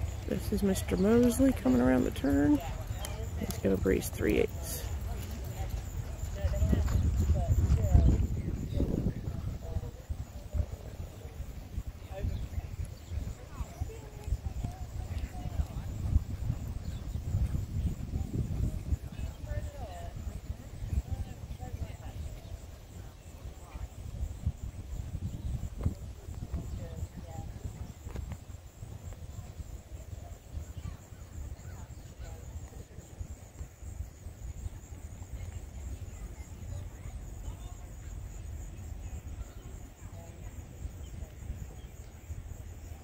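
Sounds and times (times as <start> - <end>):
wind rumble on microphone: 0.0 - 43.0.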